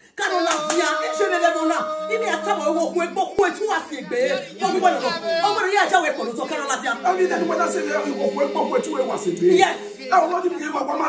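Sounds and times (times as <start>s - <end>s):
woman's drawn-out exclamation: 0.2s - 4.4s.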